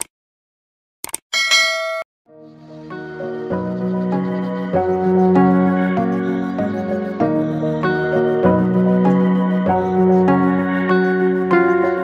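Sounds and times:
notification bell ding: 0:01.4 - 0:02.0.

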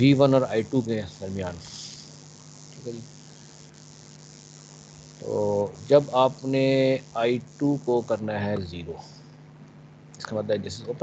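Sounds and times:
background hum with hiss: 0:00.0 - 0:11.0.

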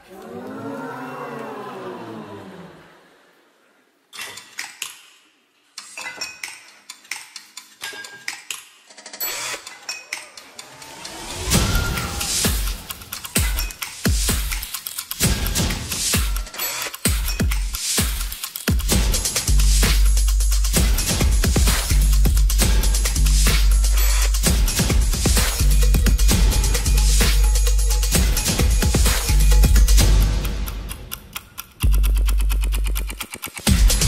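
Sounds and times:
sharp clicks and metallic taps: 0:05.8 - 0:08.7, 0:29.7 - 0:34.0
electronic dance music: 0:09.3 - 0:31.0, 0:31.8 - 0:34.0.

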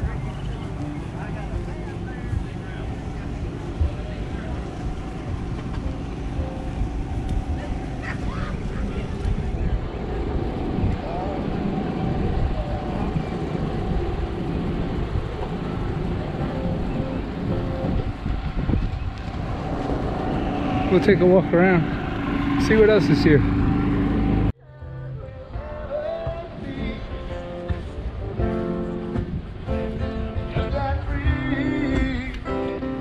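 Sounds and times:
people talking: 0:00.0 - 0:06.7, 0:07.4 - 0:10.2, 0:10.8 - 0:17.7, 0:19.4 - 0:23.5
vehicle engine running: 0:00.0 - 0:24.6
wind on microphone: 0:00.0 - 0:24.6, 0:26.3 - 0:32.4.

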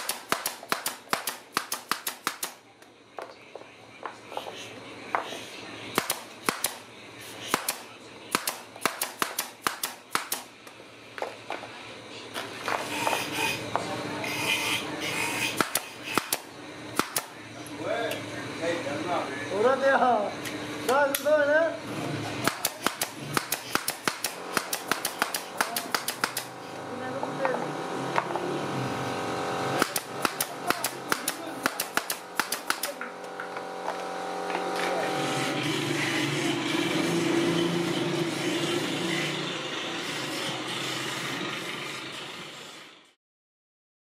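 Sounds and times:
nail gun firing: 0:00.0 - 0:02.6, 0:06.0 - 0:10.5, 0:15.5 - 0:17.4, 0:22.4 - 0:26.5, 0:29.8 - 0:33.0.

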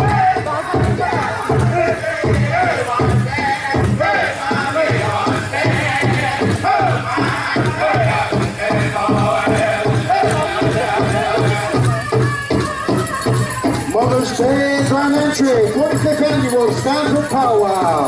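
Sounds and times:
group singing: 0:00.0 - 0:15.6
drum beating steadily: 0:00.0 - 0:18.0.

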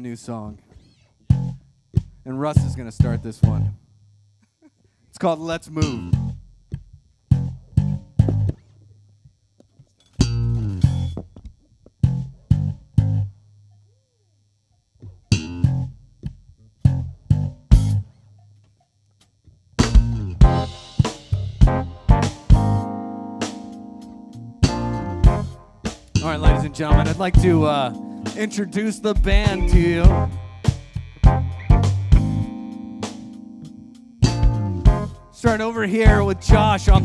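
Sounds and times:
electric bass guitar plucked notes: 0:01.3 - 0:03.8, 0:05.8 - 0:06.4, 0:07.3 - 0:08.6, 0:10.2 - 0:11.2, 0:12.0 - 0:13.4, 0:15.1 - 0:18.1, 0:19.8 - 0:37.0
band playing together: 0:20.4 - 0:37.0.

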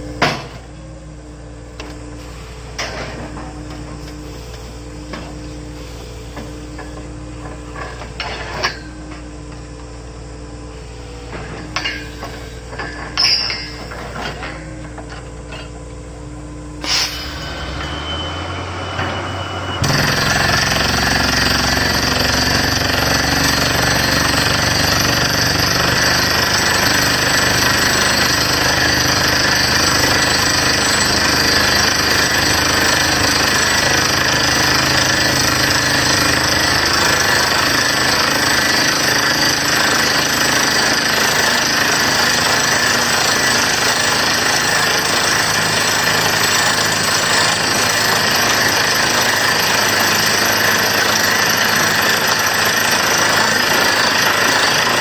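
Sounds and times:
rig engine drone: 0:00.0 - 0:28.8
drilling rig air hammer: 0:16.8 - 0:55.0.

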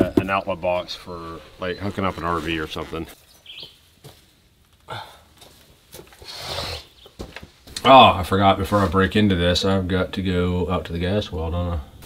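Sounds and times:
bird chirp: 0:00.0 - 0:03.9.

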